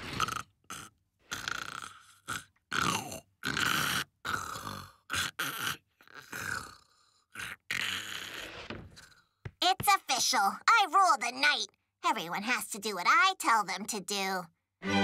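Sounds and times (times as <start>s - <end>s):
cartoon man snoring: 0.0s - 9.3s.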